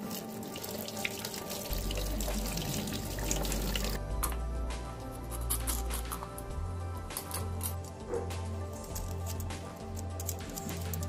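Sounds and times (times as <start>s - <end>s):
tap water running into sink: 0.0s - 4.0s.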